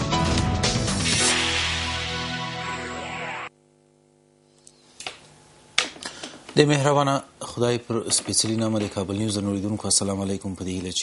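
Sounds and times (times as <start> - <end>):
faint steady hum: 3.5 - 8.0.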